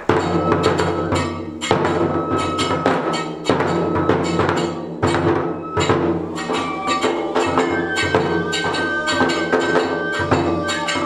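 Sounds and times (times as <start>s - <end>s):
held high flute note: 0.0s - 4.7s, 5.3s - 11.0s
drum rim strikes: 0.0s - 11.0s
small hand cymbals ringing: 0.0s - 11.0s
taiko drum strikes: 0.0s - 11.0s.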